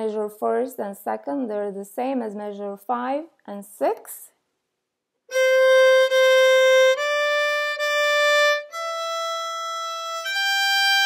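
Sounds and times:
solo violin bowed notes: 5.3 - 11.0.

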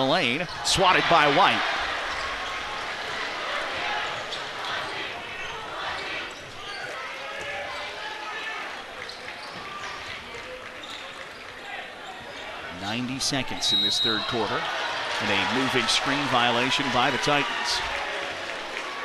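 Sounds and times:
crowd chattering and calling out: 0.0 - 19.0.

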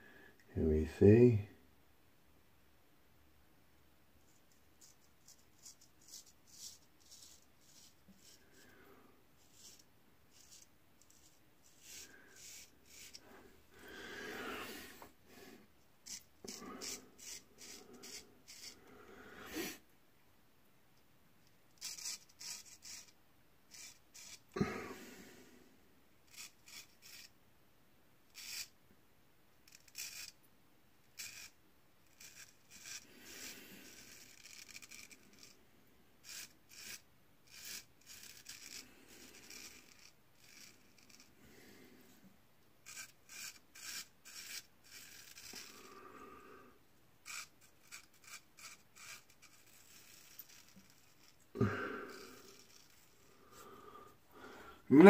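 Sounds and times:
razor scraping beard stubble: 4.8 - 8.8, 9.4 - 13.5, 16.0 - 18.8, 21.8 - 25.2, 26.3 - 27.3, 28.3 - 28.8, 29.6 - 30.4, 31.1 - 35.6, 36.2 - 41.6, 42.8 - 46.0, 47.2 - 53.8.

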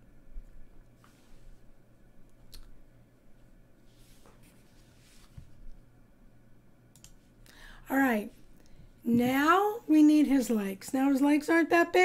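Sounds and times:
faint clicks: 6.9 - 7.2
woman speaking: 7.9 - 8.4, 9.0 - 12.0.

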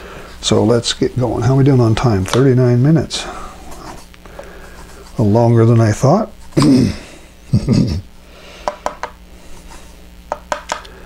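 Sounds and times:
person coughing: 6.6 - 8.0
person laughing: 6.6 - 8.1
paintbrush tapping plastic palette: 8.6 - 9.2, 10.3 - 10.9.

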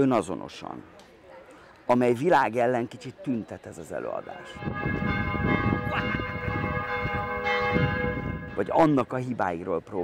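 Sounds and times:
church bells ringing: 4.4 - 9.3.

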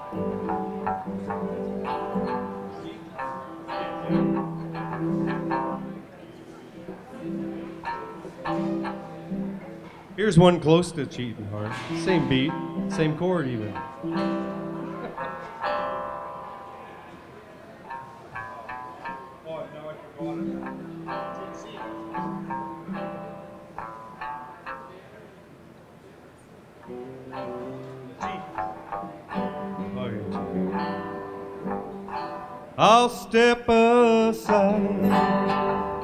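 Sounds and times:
picked guitar notes: 0.0 - 36.0
sustained bass notes: 10.2 - 14.6, 32.8 - 36.0.

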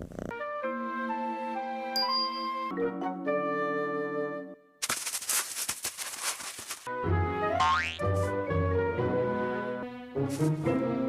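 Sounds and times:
cartoon cat scratching litter: 4.8 - 6.9, 10.3 - 10.7
bouncy cartoon music: 6.9 - 11.0.

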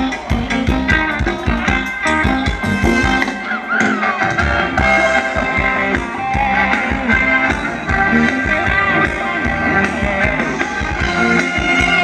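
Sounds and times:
band music over loudspeaker: 0.0 - 12.0
guitar: 0.0 - 12.0
steady drum beat: 0.0 - 12.0.

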